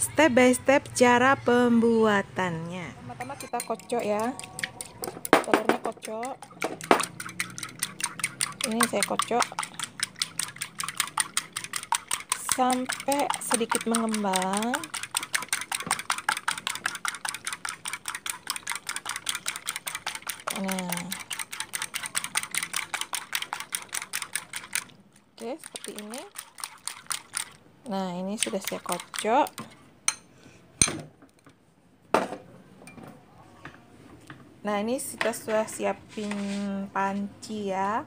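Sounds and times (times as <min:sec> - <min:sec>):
ceramic bowl clinking on steel: 0:03.2 - 0:07.2
whisk clicking against bowl: 0:03.4 - 0:27.6, 0:28.3 - 0:30.2.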